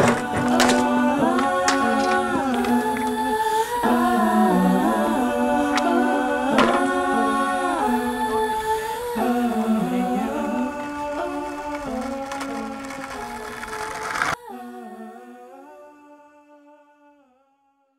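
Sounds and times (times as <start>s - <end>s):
a cappella humming: 0.0s - 17.7s.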